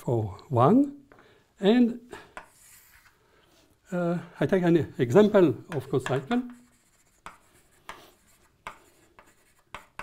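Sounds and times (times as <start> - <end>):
chalk tapping and scraping: 2.3 - 3.2, 5.2 - 10.0.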